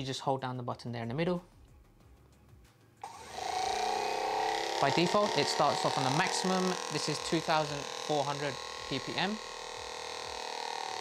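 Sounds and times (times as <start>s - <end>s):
massage gun motor running: 3.0s - 11.0s.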